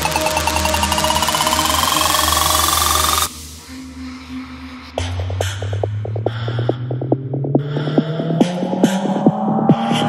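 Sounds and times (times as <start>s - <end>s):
electronic trance music: 0.0s - 4.4s.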